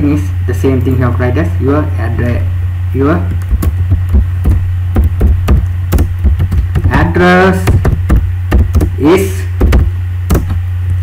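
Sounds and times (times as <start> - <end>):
low electrical hum: 0.0 - 11.0
keyboard typing: 3.4 - 7.0, 7.6 - 8.9.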